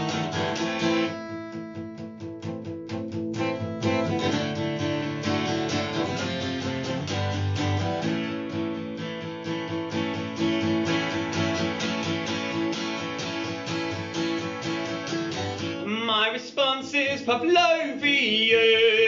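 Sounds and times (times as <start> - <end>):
acoustic guitar strumming: 0.0 - 19.0.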